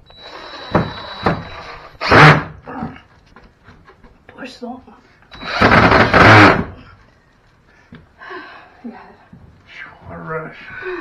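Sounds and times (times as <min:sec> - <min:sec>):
power drill driving screw: 0:00.1 - 0:02.5, 0:05.3 - 0:06.7.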